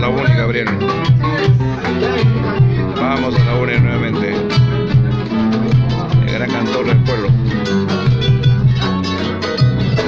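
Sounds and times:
nylon-string guitar waltz: 0.0 - 10.0.

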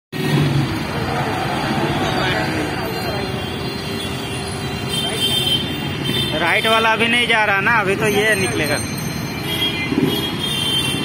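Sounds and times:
cars passing: 0.1 - 11.0.

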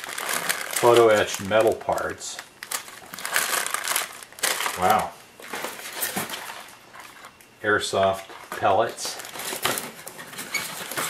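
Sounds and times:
hands rustling plastic bags: 0.0 - 7.4, 8.1 - 11.0.

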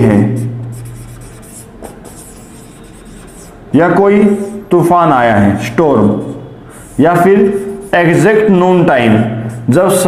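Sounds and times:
handwriting strokes: 0.0 - 3.6.

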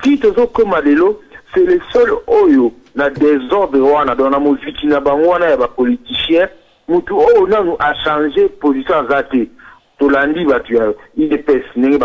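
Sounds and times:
person talking over telephone: 0.0 - 12.0.

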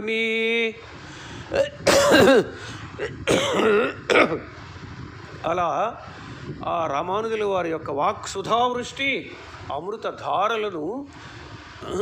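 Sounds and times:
man clearing his throat: 1.5 - 4.5.

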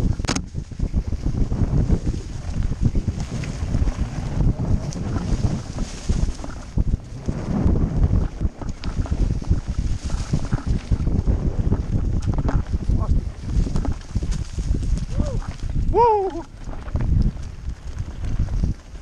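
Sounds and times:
wind rushing over microphone: 0.0 - 19.0
bike knocks and rattles: 2.5 - 15.8.

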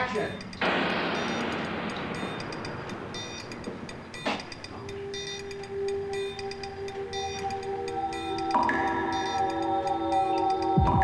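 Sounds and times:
low suspense music: 0.0 - 11.0
rushing noise: 0.6 - 5.6
sharp hit: 0.6 - 5.6.

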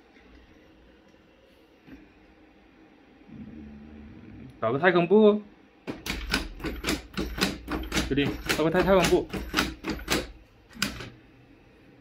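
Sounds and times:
robot legs clicking and tapping: 5.9 - 11.1.

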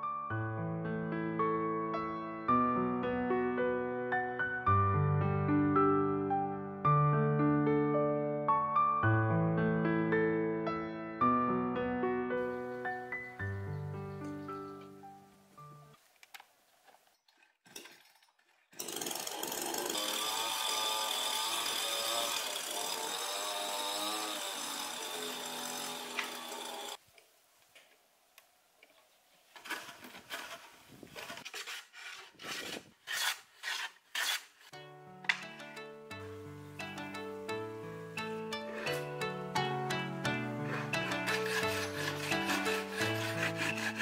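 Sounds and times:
chainsaw cutting wood: 17.3 - 27.0, 29.6 - 35.8, 38.2 - 44.0
plucked-string music: 34.8 - 44.0
short rasping strokes: 40.6 - 44.0.

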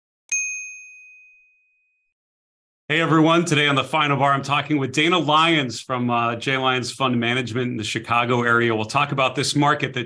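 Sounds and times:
notification bell ding: 0.3 - 2.0.

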